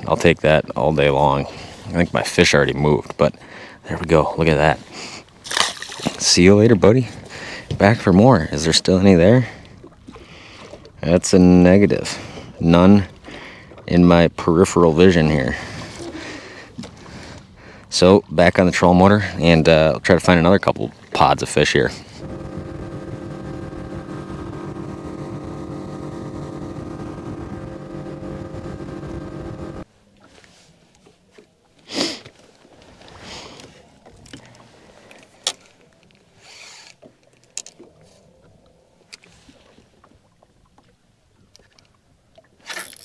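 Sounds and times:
outboard motor running: 21.8s - 29.9s.

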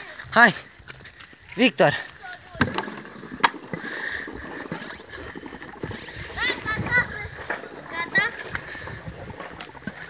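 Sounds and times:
hiss of air and water spraying: 5.8s - 6.5s.

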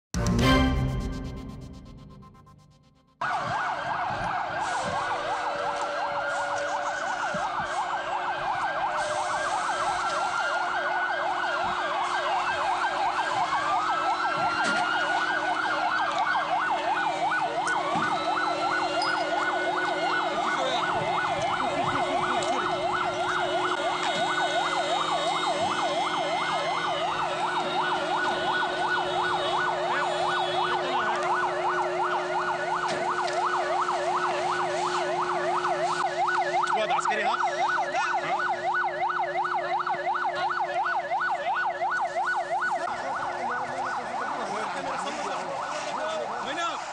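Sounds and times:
siren wailing: 1.1s - 46.9s
siren yelping: 3.2s - 46.9s.

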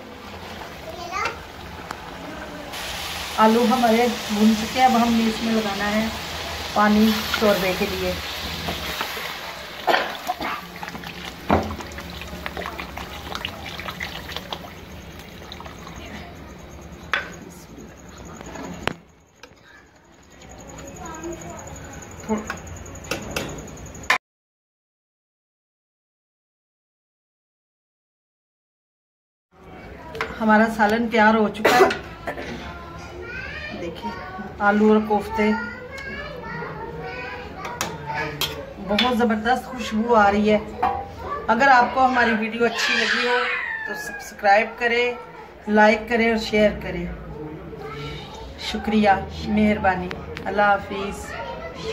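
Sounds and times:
children's voices chattering: 0.0s - 2.8s, 3.4s - 23.7s, 29.6s - 51.9s
water pouring into a pot: 0.1s - 17.0s.

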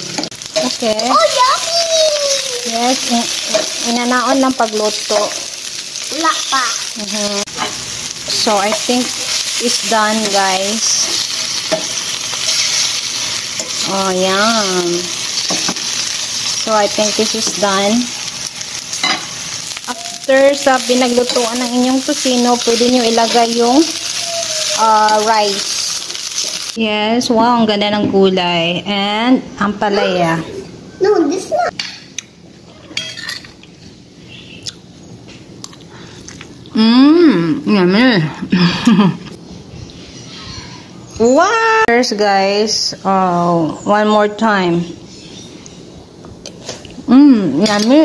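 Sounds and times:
pork sizzling in a pan: 0.0s - 26.9s
metal tongs stirring: 3.3s - 3.9s, 7.5s - 17.6s, 18.9s - 26.7s
cutlery clinking on a plate: 32.9s - 33.6s.

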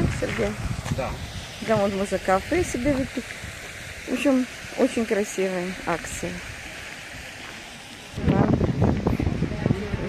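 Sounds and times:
wind buffeting microphone: 0.0s - 5.0s, 8.2s - 10.0s.

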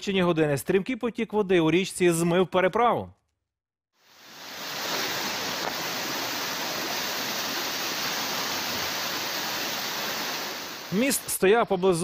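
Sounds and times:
floodwater rushing: 4.1s - 11.4s.

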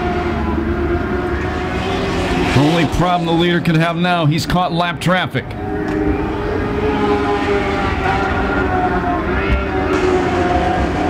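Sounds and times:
racing car engines droning: 0.0s - 11.0s.

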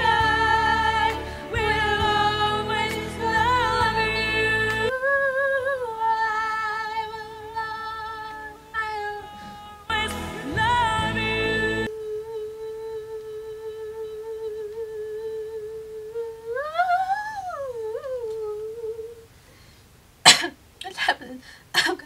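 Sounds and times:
woman singing long note: 0.0s - 19.2s.

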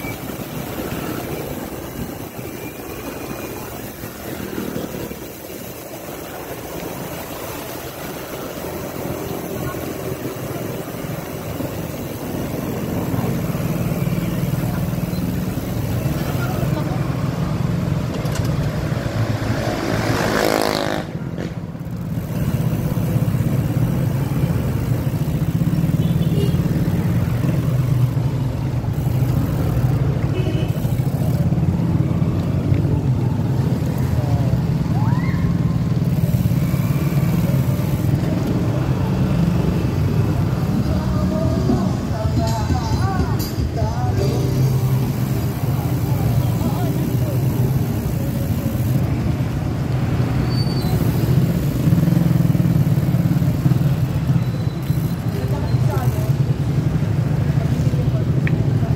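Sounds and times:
motorcycle engine running: 0.0s - 58.9s
road noise: 0.0s - 58.9s.

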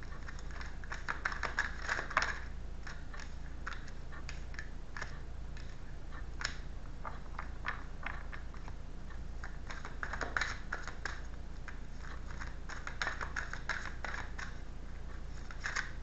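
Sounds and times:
cards being shuffled: 0.1s - 5.8s, 9.4s - 14.6s, 15.3s - 16.0s.

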